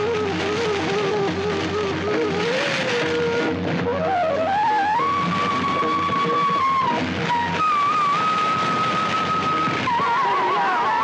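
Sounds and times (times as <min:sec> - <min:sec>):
bamboo flute long notes: 0:00.0 - 0:11.0.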